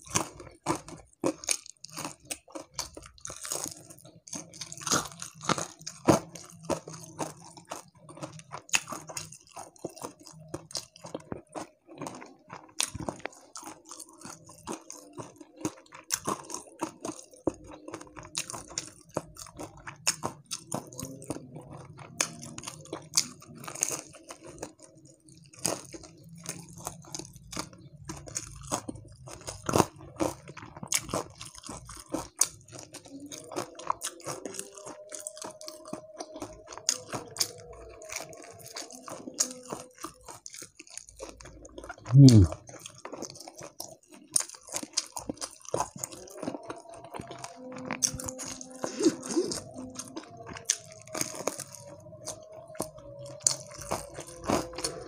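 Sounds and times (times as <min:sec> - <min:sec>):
crisp crunching bites: 0:00.0 - 0:55.0
wet chewing: 0:00.0 - 0:55.0.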